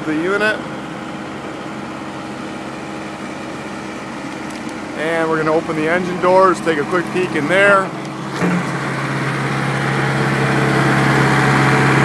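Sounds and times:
refrigeration unit diesel engine drone: 0:00.0 - 0:12.0.

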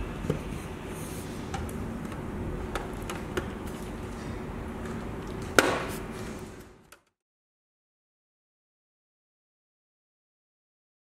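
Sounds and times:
steady low hum: 0:00.0 - 0:07.0.

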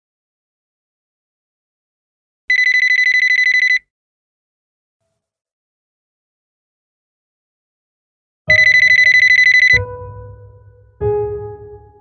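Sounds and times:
mobile phone ringing: 0:02.5 - 0:03.8, 0:08.5 - 0:09.9.

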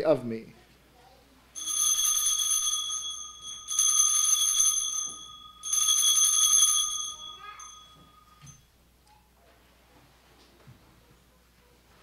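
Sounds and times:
small bells jangling: 0:01.6 - 0:08.6.

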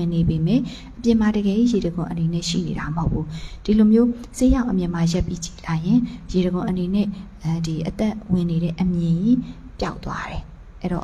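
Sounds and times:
woman speaking into microphone: 0:00.0 - 0:11.0.

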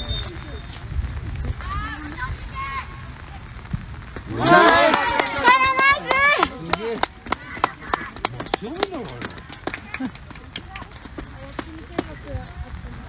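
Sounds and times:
crowd cheering: 0:04.2 - 0:11.6
crowd clapping: 0:04.2 - 0:12.2.

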